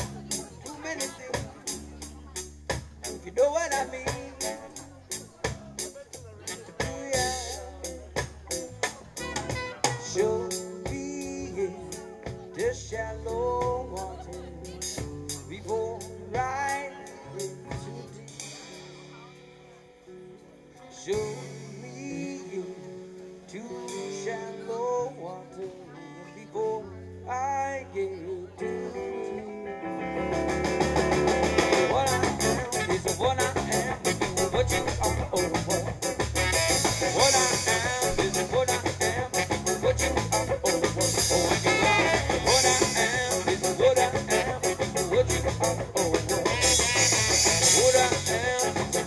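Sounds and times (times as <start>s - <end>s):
live band with drum kit: 0.0s - 26.8s, 29.7s - 49.0s.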